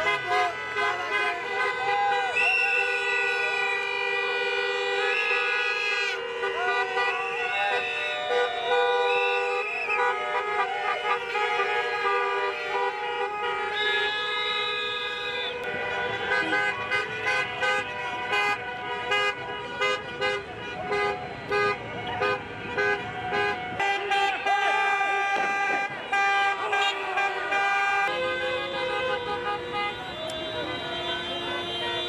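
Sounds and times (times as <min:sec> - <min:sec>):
car horns honking: 0:00.0 - 0:32.0.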